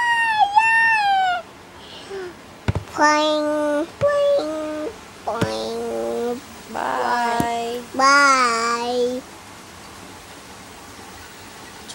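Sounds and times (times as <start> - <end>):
toddler squealing: 0.0 - 1.4.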